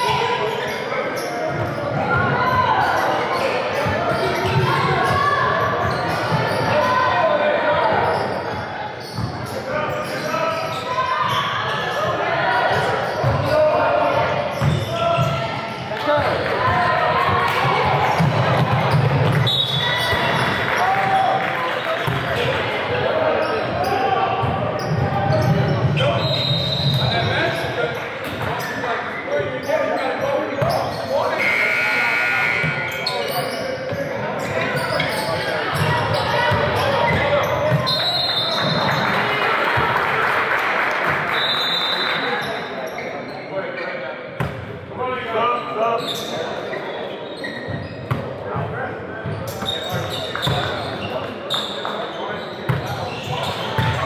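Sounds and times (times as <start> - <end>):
voices echoing in hall: 0.0 - 54.0.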